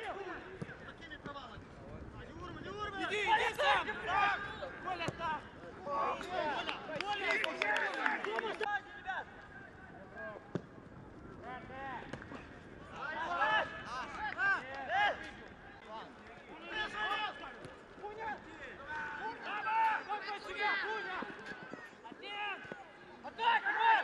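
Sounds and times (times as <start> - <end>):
footballers shouting: 2.2 - 10.5, 11.4 - 24.0.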